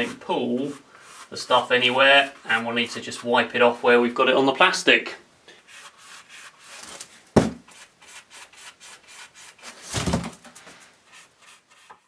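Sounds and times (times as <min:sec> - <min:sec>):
paintbrush strokes: 0:00.0 - 0:04.0, 0:05.6 - 0:07.0, 0:10.6 - 0:12.0
heavy thump: 0:07.4 - 0:07.6.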